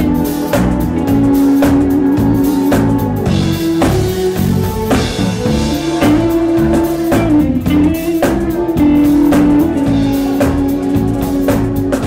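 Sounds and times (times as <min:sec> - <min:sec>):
drum kit beat: 0:00.0 - 0:12.0
guitar: 0:00.0 - 0:12.0
live band playing soul music: 0:00.0 - 0:12.0
loud held melody line: 0:00.0 - 0:12.0.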